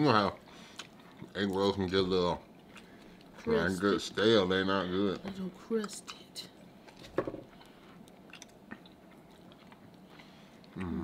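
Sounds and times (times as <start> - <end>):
people chewing: 0.0 - 11.0.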